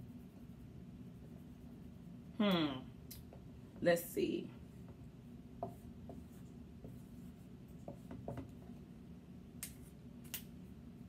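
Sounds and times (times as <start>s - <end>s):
marker writing on whiteboard: 4.7s - 8.8s.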